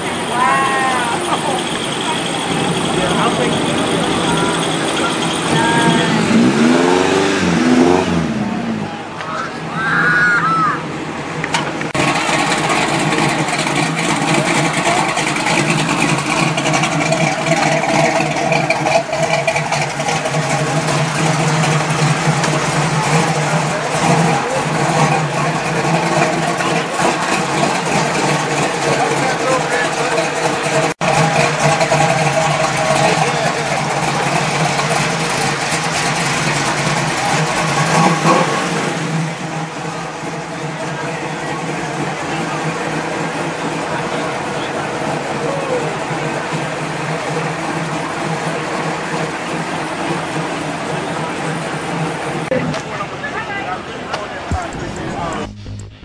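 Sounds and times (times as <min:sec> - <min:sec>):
people talking: 0:00.0 - 0:10.9, 0:11.6 - 0:19.2, 0:20.2 - 0:35.6, 0:39.7 - 0:56.0
car engine running: 0:00.0 - 0:56.0.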